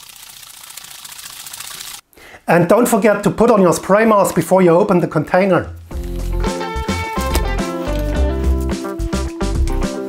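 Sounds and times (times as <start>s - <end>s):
liquid sloshing in shaken bottle: 0.0s - 2.0s.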